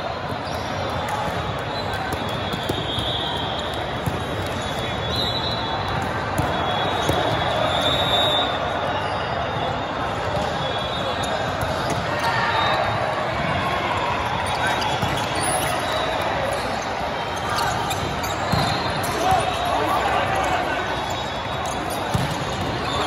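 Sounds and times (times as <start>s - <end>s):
din of players' voices: 0.0s - 23.0s.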